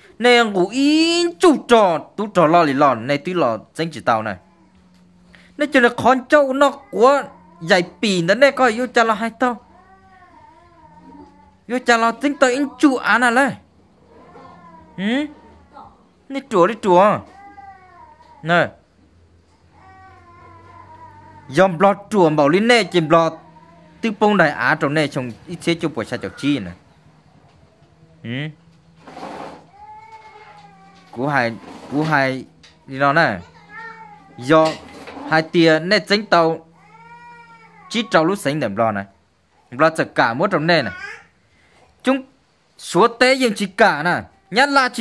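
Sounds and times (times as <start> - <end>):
person speaking: 0.0 - 4.4, 11.0 - 13.6, 14.6 - 15.6, 21.5 - 23.4
cat meowing faintly: 14.0 - 16.0, 19.7 - 24.1.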